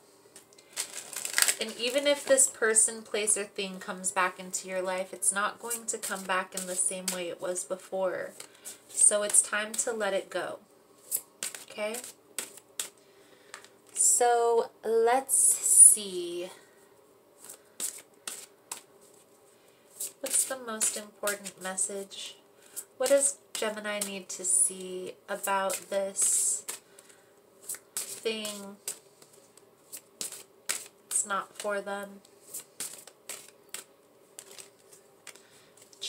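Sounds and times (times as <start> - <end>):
cards being shuffled: 0.4 - 2.5, 5.6 - 7.5, 8.3 - 10.0, 11.0 - 14.0, 17.4 - 19.3, 20.0 - 21.6, 22.7 - 24.2, 25.4 - 36.0.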